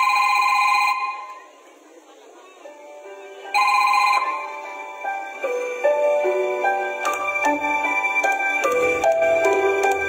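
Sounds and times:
telephone ringing: 0.0 - 1.3, 3.6 - 4.6.

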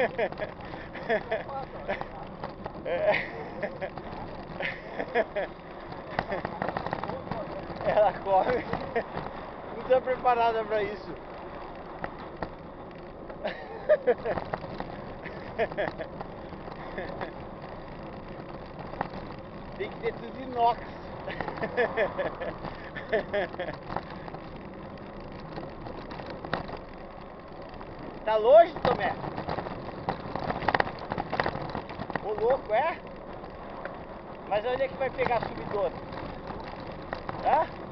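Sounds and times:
voices: 0.0 - 11.4, 19.6 - 24.4, 28.1 - 29.6, 31.1 - 33.2, 34.4 - 37.8
bike clicks and rattles: 0.0 - 37.9
tyre and wind noise: 0.0 - 37.9.

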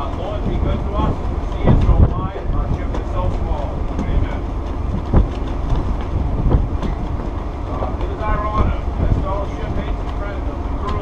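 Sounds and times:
ship engine rumble: 0.0 - 11.0
wind buffeting microphone: 0.0 - 11.0
short thumps: 0.4 - 9.9.

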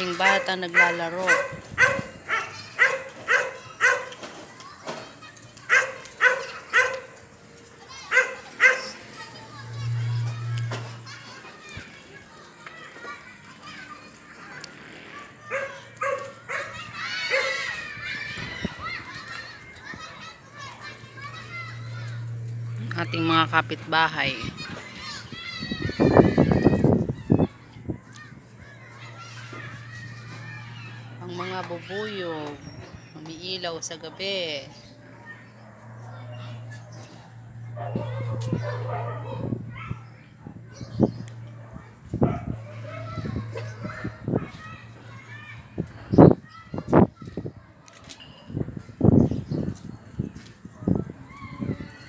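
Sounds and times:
children shouting: 0.0 - 33.2, 34.4 - 52.0
low hum: 8.8 - 11.5, 20.2 - 27.8, 34.2 - 46.1.

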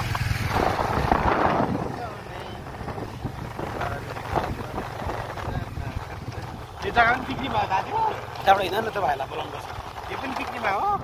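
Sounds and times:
wind on microphone: 0.0 - 7.8
motor scooter rumble: 0.0 - 11.0.

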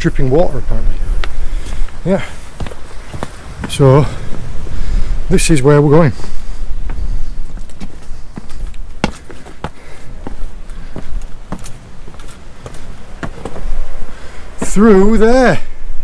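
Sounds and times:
footsteps on rock: 1.2 - 5.1, 6.1 - 15.0.

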